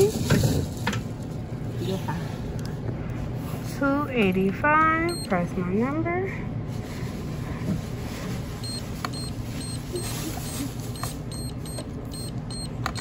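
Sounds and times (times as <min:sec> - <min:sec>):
checkout background hum: 0:00.0 - 0:13.0
keypad beeps: 0:05.1 - 0:05.3, 0:08.6 - 0:10.1, 0:11.0 - 0:13.0.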